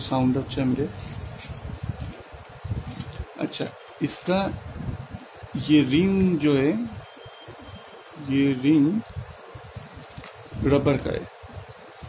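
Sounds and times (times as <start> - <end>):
plastic wrap rubbing and bumping: 9.7 - 11.0.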